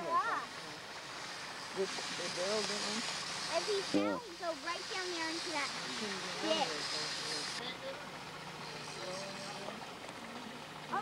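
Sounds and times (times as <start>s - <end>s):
steady hiss: 0.0s - 9.9s
voices talking indistinctly: 0.0s - 11.0s.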